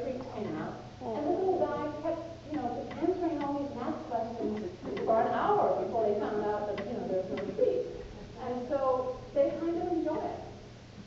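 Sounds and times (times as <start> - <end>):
woman lecturing: 0.0 - 10.6.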